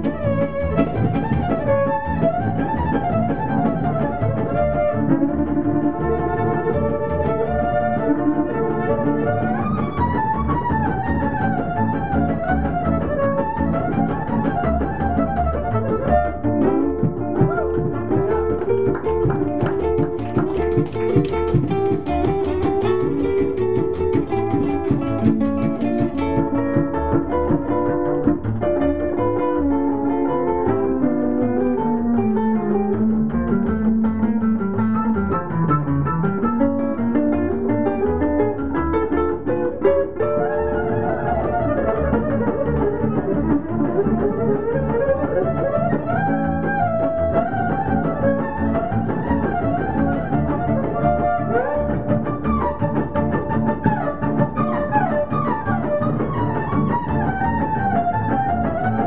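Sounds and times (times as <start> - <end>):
electric guitar melody: 0.0 - 59.0
upright string bass: 0.0 - 59.0
violin: 0.0 - 59.0.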